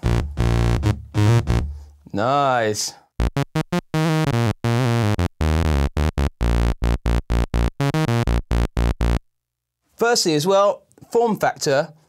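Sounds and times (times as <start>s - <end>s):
synthesizer bass line: 0.0s - 1.7s, 3.2s - 9.2s.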